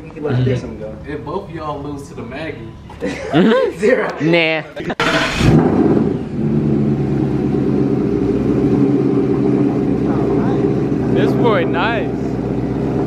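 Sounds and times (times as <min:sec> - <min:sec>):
car engine starting and idling: 0:04.8 - 0:13.0.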